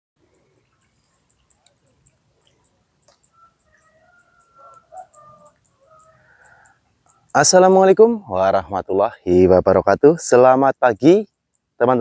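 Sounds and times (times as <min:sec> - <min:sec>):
distant rooster crowing: 0:03.1 - 0:07.3.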